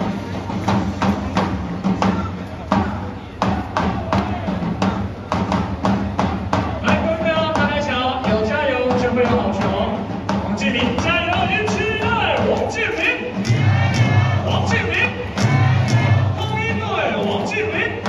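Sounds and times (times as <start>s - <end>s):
drum beating steady rhythm: 0.0s - 18.0s.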